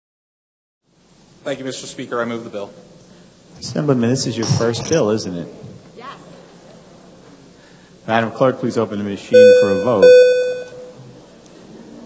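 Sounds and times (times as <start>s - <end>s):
electronic pitched tone: 9.4s - 10.9s.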